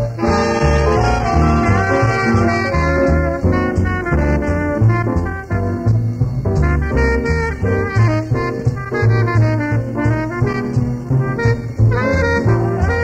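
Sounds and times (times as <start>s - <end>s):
jazz band playing live: 0.0s - 13.0s
low bass notes: 0.0s - 13.0s.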